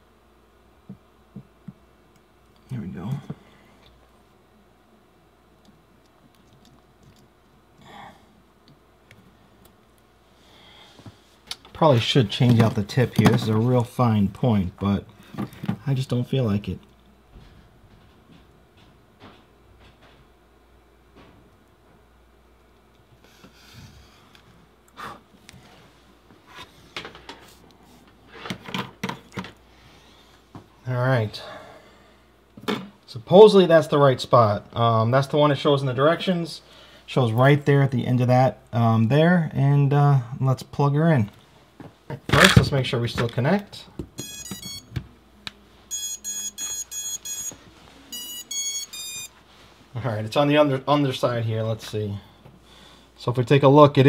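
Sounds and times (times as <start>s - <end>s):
short electronic beeps: 44.2s - 44.9s, 45.9s - 49.3s.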